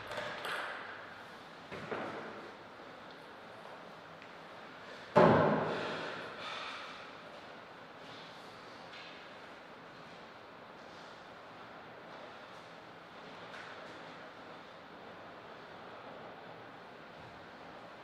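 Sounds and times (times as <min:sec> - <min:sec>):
faint hall noise: 0:00.0 - 0:18.0.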